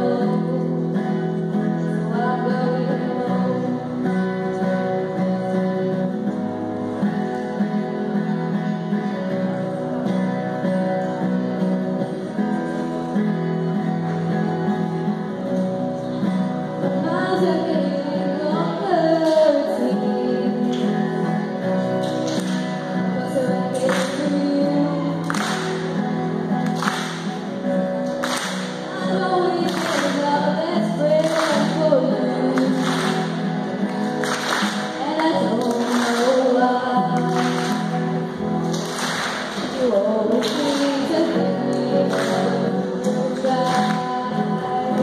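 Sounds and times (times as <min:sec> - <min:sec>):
woman singing into a microphone: 0:00.0 - 0:06.0, 0:16.8 - 0:21.4, 0:22.9 - 0:25.8, 0:28.8 - 0:33.6, 0:34.9 - 0:38.0, 0:39.6 - 0:45.0
strummed acoustic guitar: 0:00.0 - 0:45.0.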